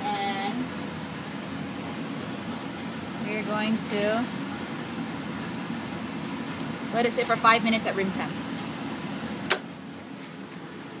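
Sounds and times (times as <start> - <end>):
ventilation hum: 0.0 - 11.0
sharp click: 9.5 - 9.7.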